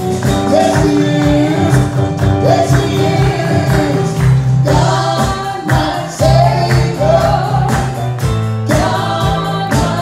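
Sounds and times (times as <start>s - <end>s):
congregation singing along: 0.2s - 10.0s
man singing into a microphone: 0.3s - 4.2s.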